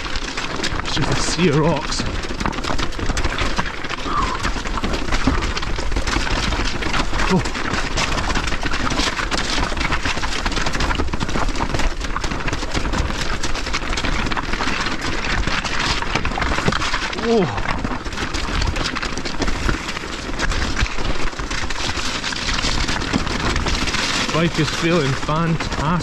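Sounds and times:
bike rattling: 0.0s - 26.0s
tyres crunching over stones: 0.0s - 26.0s
wind rumbling on microphone: 0.0s - 26.0s.

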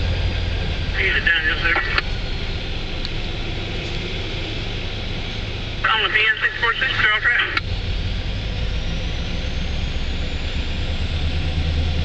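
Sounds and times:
diesel locomotive rumble: 0.0s - 12.0s
faint high whine: 0.8s - 7.6s.

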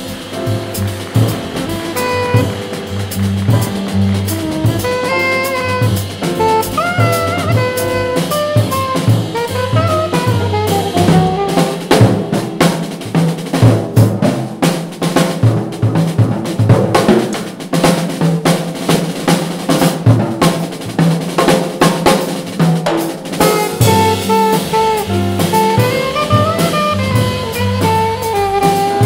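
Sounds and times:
alto saxophone: 0.0s - 12.7s, 23.3s - 29.0s
jazz drum break: 0.0s - 29.0s.

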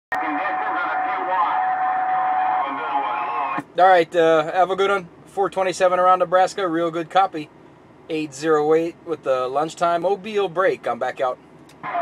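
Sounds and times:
garbled radio voice: 0.1s - 3.6s
radio static: 0.1s - 3.6s.

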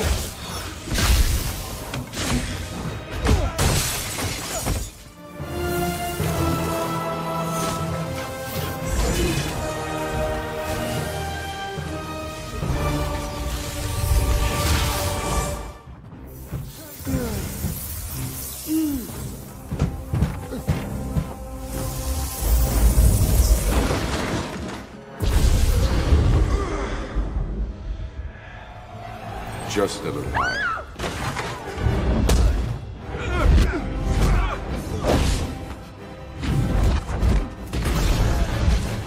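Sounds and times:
orchestral score: 0.0s - 39.0s.

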